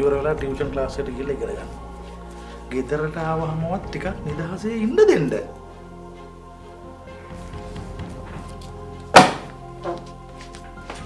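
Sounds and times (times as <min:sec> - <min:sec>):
background music: 0:00.0 - 0:11.0
book thunk on wooden table: 0:09.2 - 0:10.0.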